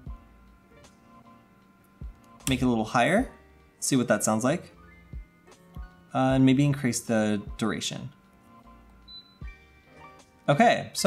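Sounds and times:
background music: 0.0 - 11.0
short high-pitched electronic beep: 9.1 - 9.5.

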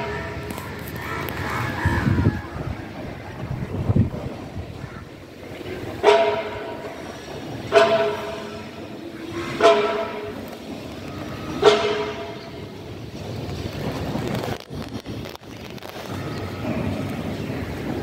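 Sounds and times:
wind rumble on microphone: 0.3 - 5.8.

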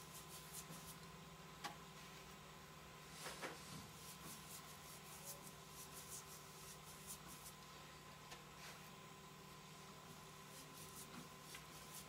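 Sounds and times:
paintbrush swishing: 0.0 - 1.0, 3.6 - 7.6, 10.4 - 12.0.

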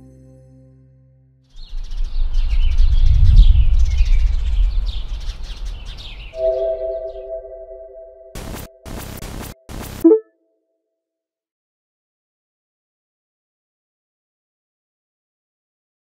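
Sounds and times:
deep rumbling whoosh: 1.8 - 6.1
bird-like chirps: 5.6 - 8.0
held synth chord: 6.4 - 8.4
glitchy static bursts: 8.4 - 10.1.

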